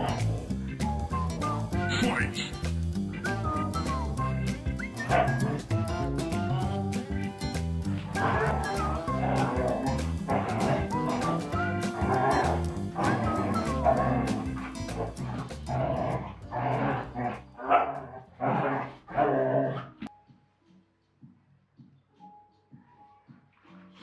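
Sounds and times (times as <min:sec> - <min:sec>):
dogs barking and yipping: 0:00.0 - 0:01.8, 0:03.1 - 0:20.0
background music: 0:00.0 - 0:24.0.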